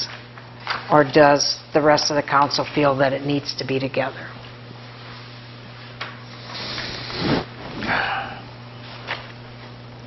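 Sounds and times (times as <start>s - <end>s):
rubbing on microphone: 6.4s - 8.0s.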